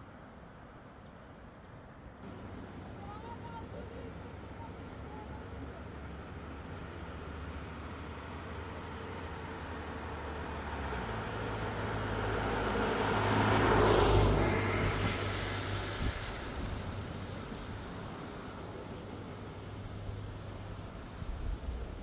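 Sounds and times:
car driving past: 2.2s - 20.9s.

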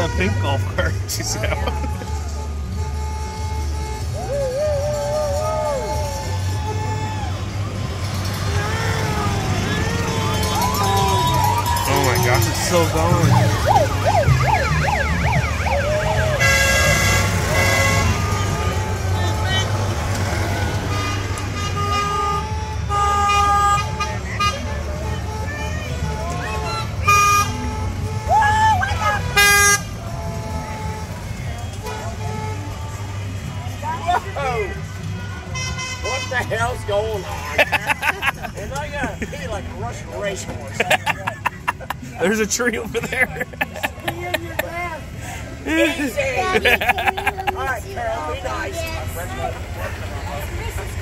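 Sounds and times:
golf cart horn blasts: 0.0s - 4.3s, 15.2s - 19.6s, 20.2s - 28.4s, 29.0s - 33.3s, 35.2s - 36.6s
people's voices: 0.0s - 51.0s.

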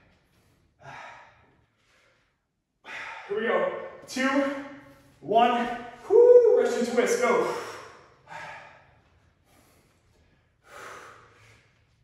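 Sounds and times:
man breathing hard: 0.0s - 3.5s, 7.3s - 12.0s.

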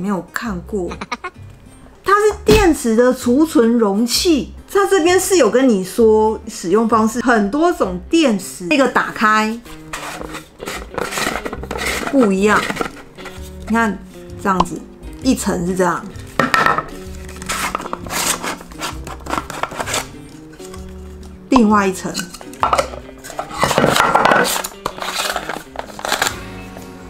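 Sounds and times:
plastic container sections scraping: 9.5s - 14.0s, 17.3s - 20.8s, 22.0s - 26.3s.

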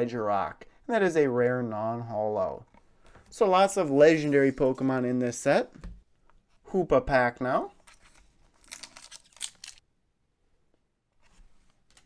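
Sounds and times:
foil wrapper crinkling: 8.5s - 9.8s.

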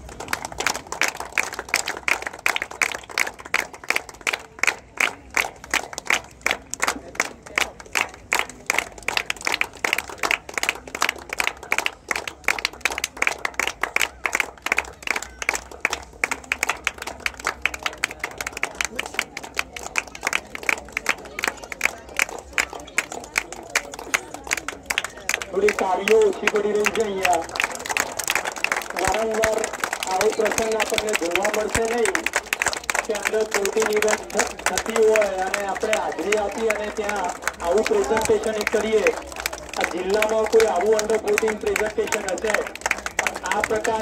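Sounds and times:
people clapping: 0.0s - 44.0s.

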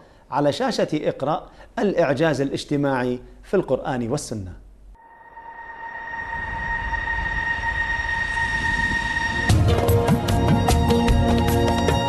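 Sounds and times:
rush of noise with low rumble: 5.0s - 9.5s
steady high tones: 5.0s - 9.8s.

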